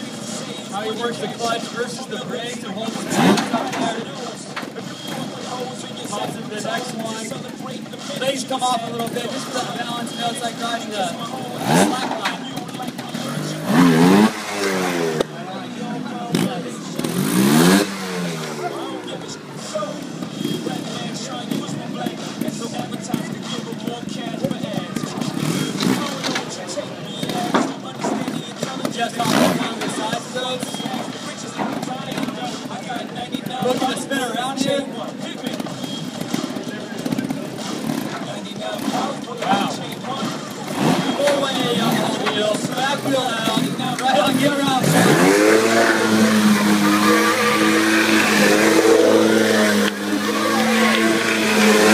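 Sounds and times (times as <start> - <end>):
motorcycle engine revving: 0.0 - 51.9
people talking: 0.0 - 51.9.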